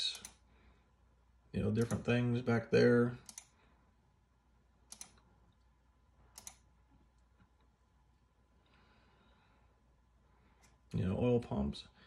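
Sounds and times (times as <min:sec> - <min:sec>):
computer mouse clicks: 0:00.0 - 0:00.4, 0:03.2 - 0:03.6, 0:04.9 - 0:05.3, 0:06.3 - 0:06.7.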